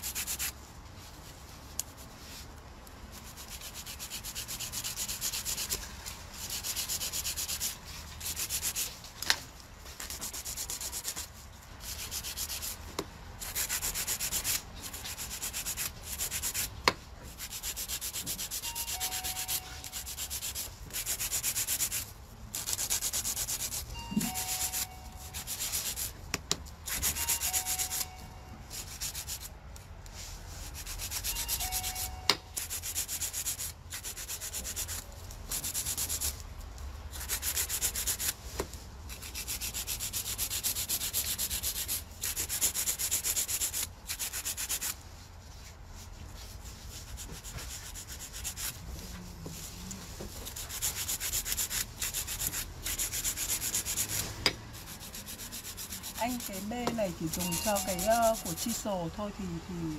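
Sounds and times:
nail file rasping on nails: 0.0s - 0.5s, 3.1s - 9.0s, 9.9s - 28.1s, 28.7s - 29.5s, 30.6s - 36.4s, 37.1s - 38.4s, 39.1s - 45.0s, 46.7s - 59.0s.

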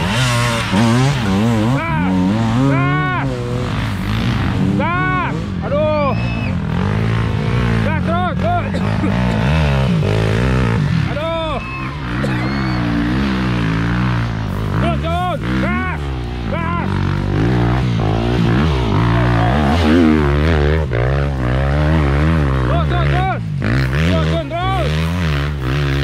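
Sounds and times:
people shouting: 0.0s - 3.5s, 10.7s - 14.0s, 17.7s - 22.0s
motorcycle engines revving: 0.0s - 26.0s.

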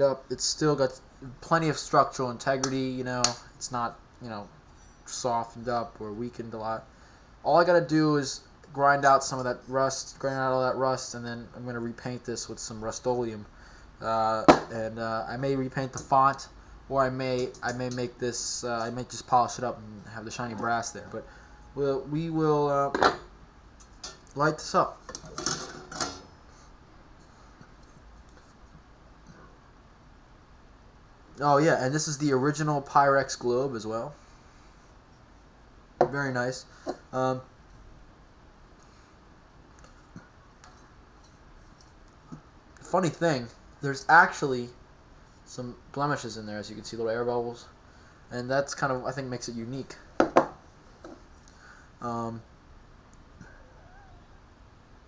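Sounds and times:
faint wavering whistle-like tone: 20.4s - 22.0s.

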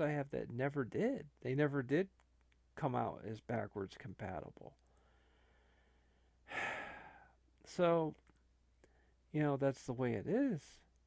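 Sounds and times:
man sighing: 6.5s - 7.4s.

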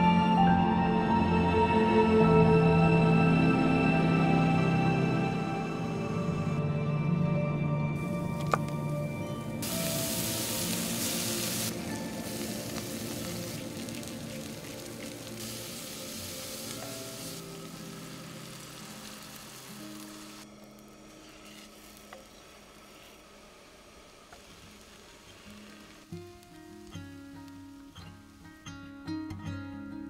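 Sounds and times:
soft background music: 0.0s - 30.0s
food sizzling in a skillet: 9.6s - 28.7s.

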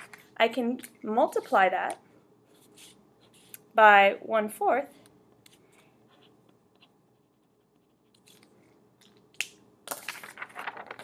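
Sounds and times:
paper rustling: 9.9s - 11.0s.

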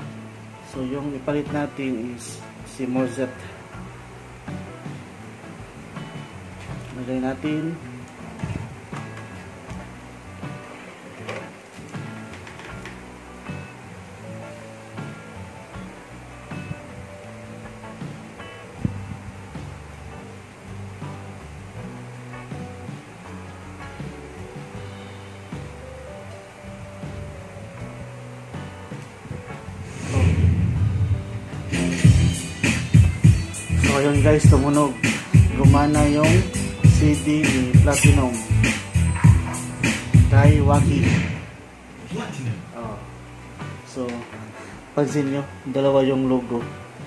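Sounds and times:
music with stepping bass line: 3.7s - 7.1s, 7.8s - 10.8s, 14.9s - 41.6s
loud intro music: 28.6s - 41.7s.

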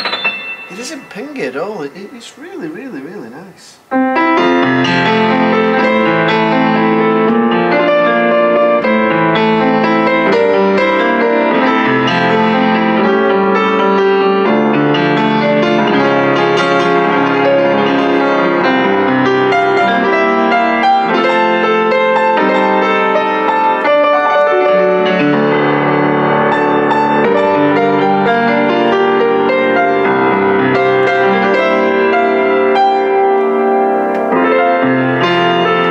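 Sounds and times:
upright piano playing: 0.0s - 35.9s.

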